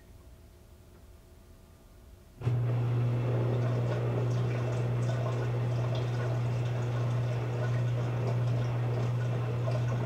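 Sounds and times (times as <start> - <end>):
washing machine electric hum: 0.0 - 10.0.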